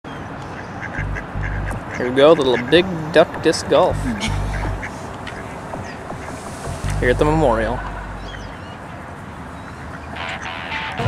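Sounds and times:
ducks quacking softly: 0:00.5 - 0:08.8, 0:09.8 - 0:11.0
low rumble: 0:01.0 - 0:01.9, 0:03.9 - 0:09.1.

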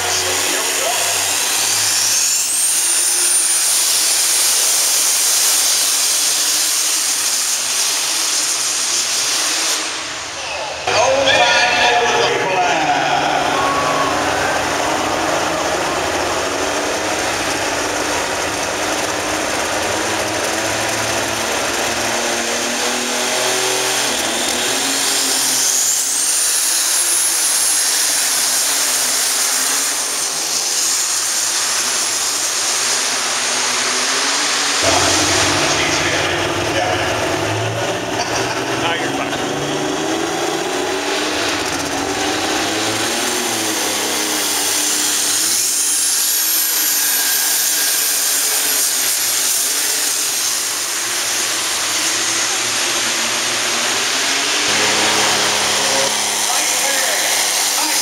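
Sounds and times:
tractor diesel engine: 0:00.0 - 0:58.0
turbocharger whine: 0:00.0 - 0:58.0.

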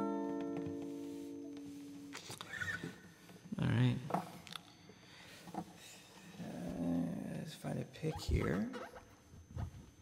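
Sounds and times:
guitar chord ringing: 0:00.0 - 0:02.1.

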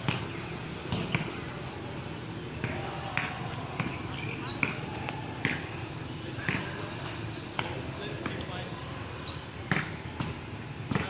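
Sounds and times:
faint background voices: 0:00.8 - 0:11.0.

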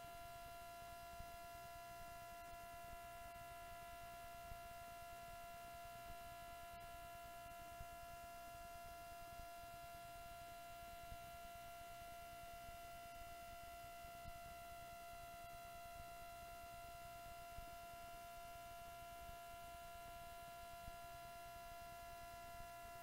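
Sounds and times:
faint electrical hum: 0:00.0 - 0:23.0.

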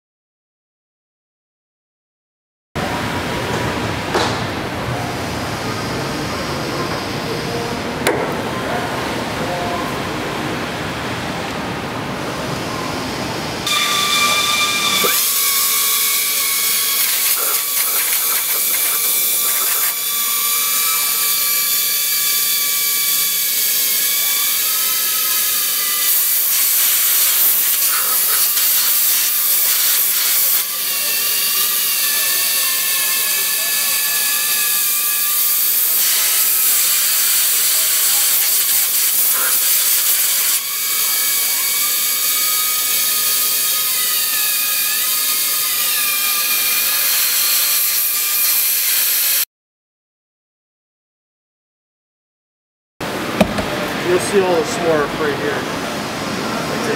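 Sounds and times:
drill whining into metal: 0:13.7 - 0:48.5.

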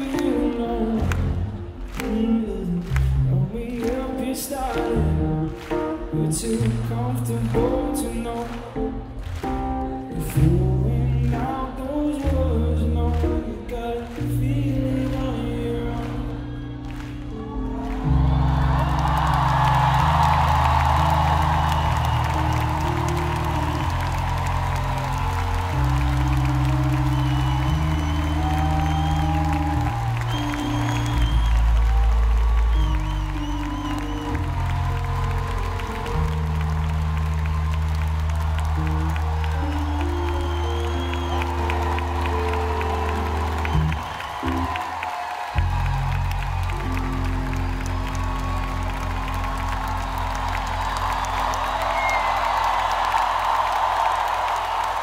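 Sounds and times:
crowd cheering: 0:00.0 - 0:55.0.

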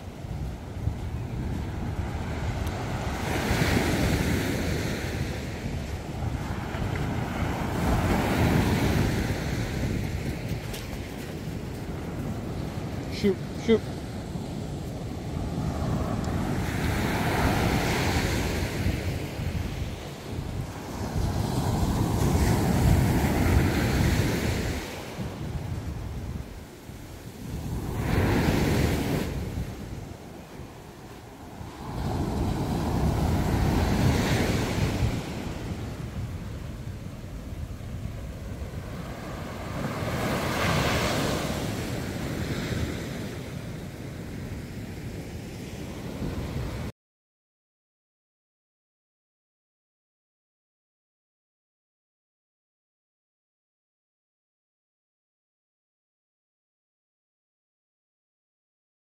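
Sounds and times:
wind rumbling on microphone: 0:00.0 - 0:46.9
surf breaking on beach: 0:00.3 - 0:26.3, 0:31.4 - 0:44.0.

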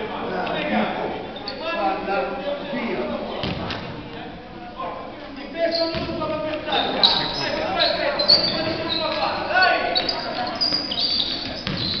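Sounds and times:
voices calling out in a gymnasium: 0:00.0 - 0:12.0.

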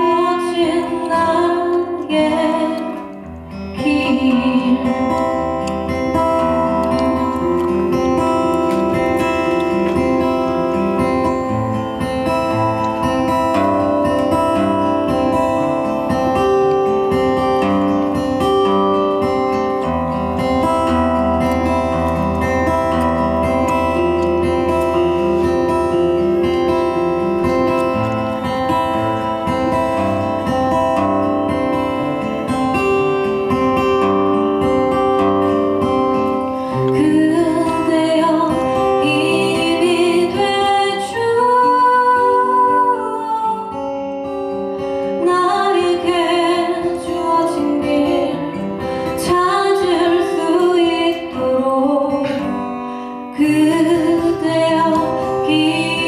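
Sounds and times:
woman singing: 0:00.0 - 0:06.2, 0:36.7 - 0:44.4, 0:45.0 - 0:56.0
steel-string acoustic guitar: 0:00.0 - 0:56.0.

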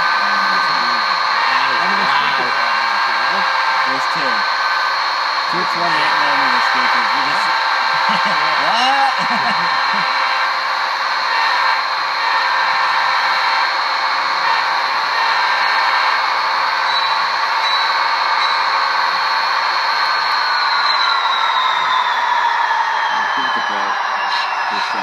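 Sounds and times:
diesel engine drone from small speaker: 0:00.0 - 0:25.0.

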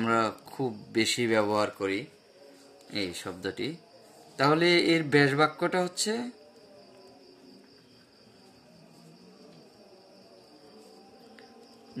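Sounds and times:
high-pitched cricket trill: 0:00.0 - 0:12.0.

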